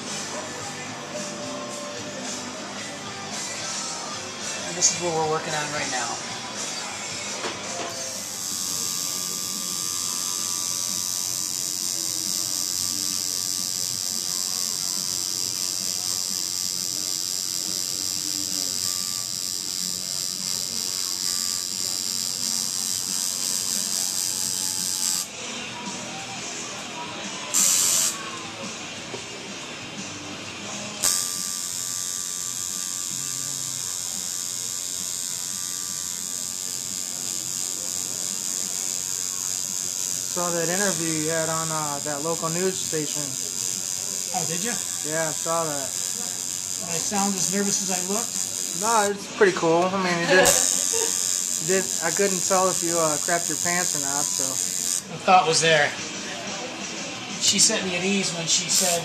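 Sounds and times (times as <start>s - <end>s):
tattoo machine buzzing: 4.5s - 6.2s, 6.8s - 28.7s, 29.4s - 59.0s.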